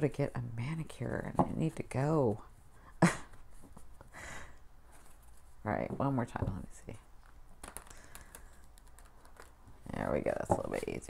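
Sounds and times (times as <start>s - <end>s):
cards clicking while shuffled: 7.2s - 9.6s.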